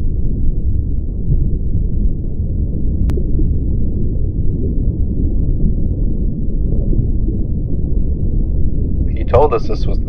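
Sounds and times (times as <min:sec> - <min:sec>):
deep underwater rumble: 0:00.0 - 0:10.0.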